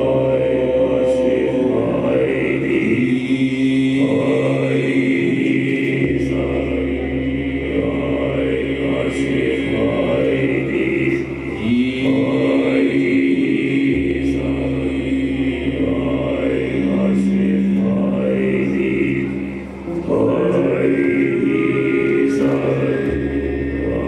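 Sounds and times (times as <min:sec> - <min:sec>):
deep bass drone: 0:00.0 - 0:24.0
man chanting into microphone: 0:00.0 - 0:24.0
sustained droning tones: 0:00.0 - 0:24.0.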